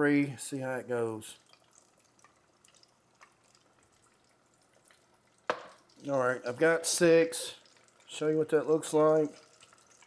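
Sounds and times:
frying oil crackling: 0.1s - 10.0s
loud sizzle in deep fryer: 1.5s - 10.0s
small pops of oil: 4.7s - 6.0s.

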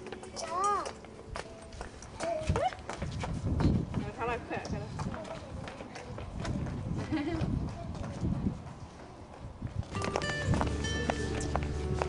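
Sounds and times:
music: 0.0s - 4.3s, 9.9s - 12.0s
footsteps on pavement: 0.0s - 12.0s.

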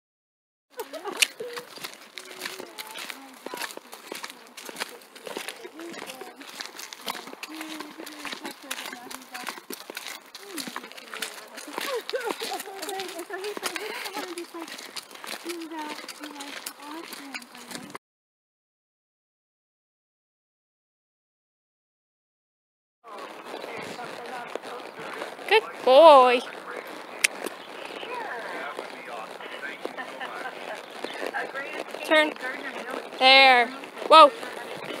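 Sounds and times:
indistinct background voices: 0.8s - 18.0s, 23.1s - 35.0s
rustling near microphone: 23.1s - 35.0s.

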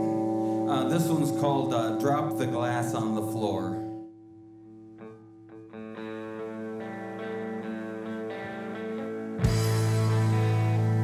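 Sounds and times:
electric guitar picking: 0.0s - 11.0s.

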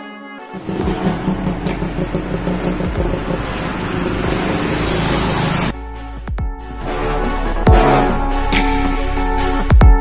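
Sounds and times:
road traffic rushing: 0.6s - 5.8s.

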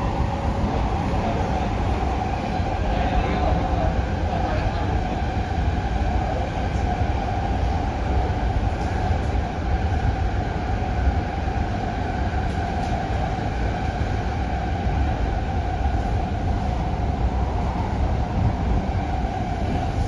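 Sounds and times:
mid-pitched train drone: 0.0s - 20.0s
train wheels rumbling: 0.0s - 20.0s.

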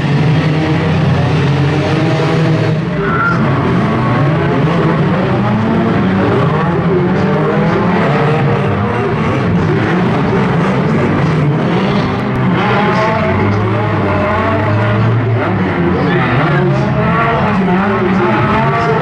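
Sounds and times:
car engines revving hard: 0.0s - 19.0s.

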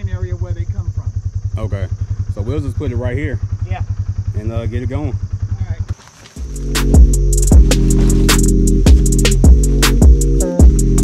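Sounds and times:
vehicle engine idling: 0.0s - 11.0s
music with bass and drums: 6.3s - 11.0s.

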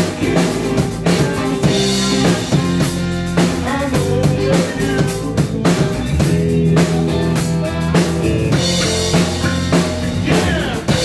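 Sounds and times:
drum kit beat: 0.0s - 11.0s
electric bass: 0.0s - 11.0s
guitar: 0.0s - 11.0s.

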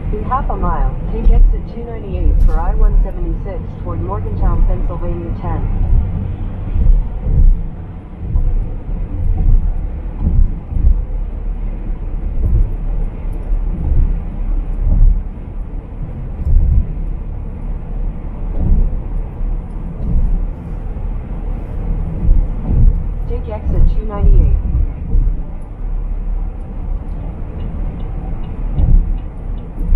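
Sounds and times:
car road and engine noise: 0.0s - 29.9s.

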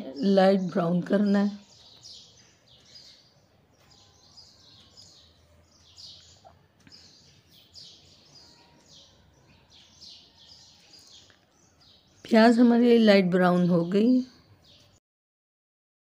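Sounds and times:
faint small birds chirping: 0.0s - 15.0s.

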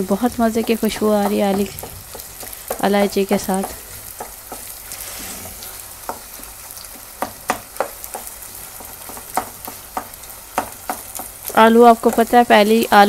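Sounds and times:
potato sizzling in a pan: 0.0s - 13.0s
wooden spoon knocking against pan: 0.4s - 4.7s, 6.0s - 12.4s.

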